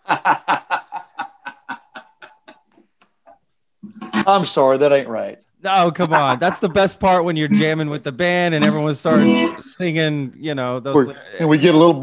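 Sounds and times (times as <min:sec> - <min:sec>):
man laughing hard: 0:00.0 - 0:02.7, 0:06.0 - 0:06.9.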